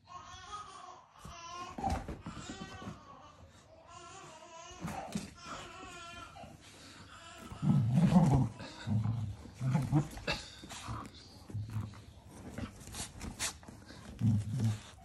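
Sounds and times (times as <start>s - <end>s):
puppy growling: 7.4s - 15.0s.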